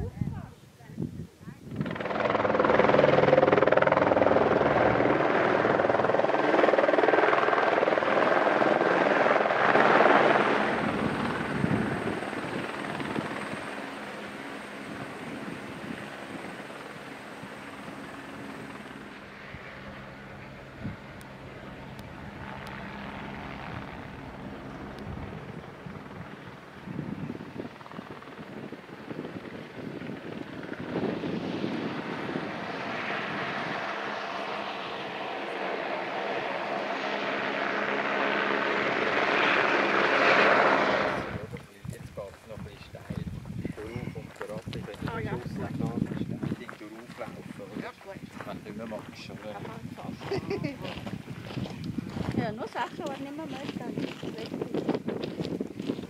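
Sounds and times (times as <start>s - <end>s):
engine droning: 1.7s - 26.7s.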